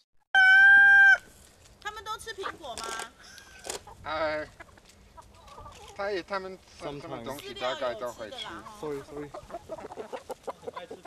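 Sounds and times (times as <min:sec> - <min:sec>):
chickens clucking: 0:02.4 - 0:11.0.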